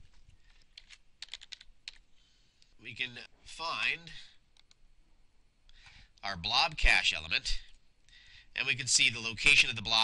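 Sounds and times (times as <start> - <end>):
faint keyboard keystrokes: 0.1 - 2.0.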